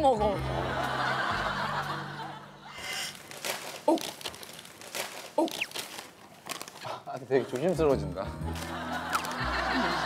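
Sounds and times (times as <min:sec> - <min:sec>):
plastic wrap crinkling: 0:02.8 - 0:07.9, 0:08.6 - 0:09.4.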